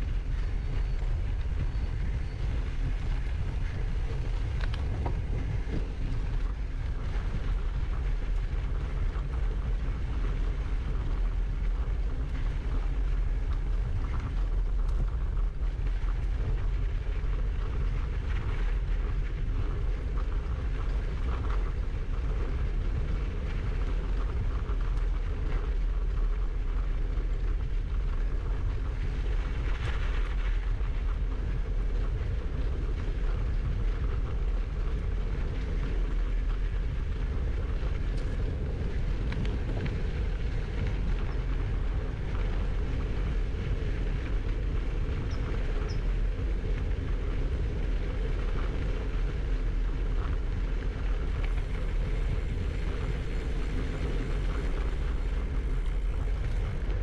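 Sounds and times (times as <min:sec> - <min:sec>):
bike rolling on dirt path: 0:00.0 - 0:57.0
wind buffeting microphone: 0:00.0 - 0:57.0.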